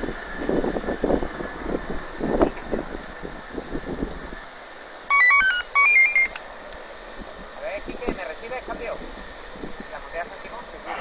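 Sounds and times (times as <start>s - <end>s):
steady background hiss: 0.0s - 11.0s
radio stepped tone beeps: 5.1s - 6.4s.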